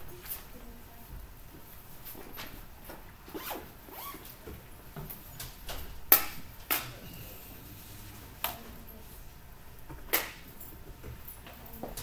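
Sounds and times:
zipper being pulled: 0:03.3 - 0:04.4.

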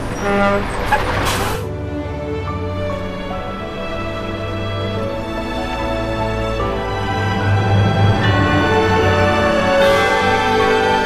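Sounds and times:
truck passing by: 0:00.0 - 0:11.0
soundtrack music: 0:01.5 - 0:11.0.

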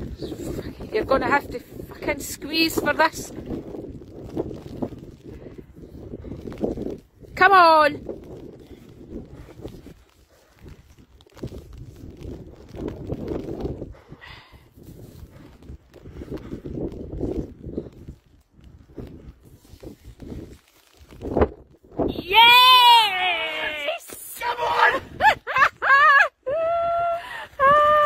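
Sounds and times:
man breathing hard: 0:13.9 - 0:16.8.

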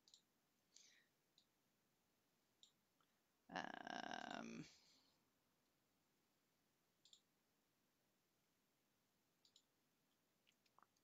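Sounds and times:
faint mouse clicks: 0:00.0 - 0:01.5, 0:02.6 - 0:03.1, 0:07.0 - 0:07.3, 0:09.4 - 0:11.0.

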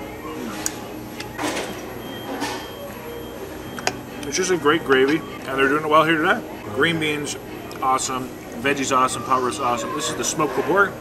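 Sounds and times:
restaurant background noise: 0:00.0 - 0:11.0.

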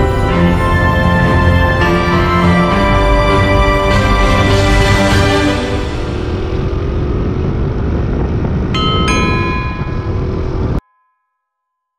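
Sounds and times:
road rumble: 0:00.0 - 0:10.8
wind: 0:00.0 - 0:10.8
moped engine running: 0:04.1 - 0:10.8
bell-like chime tones: 0:08.8 - 0:11.9.

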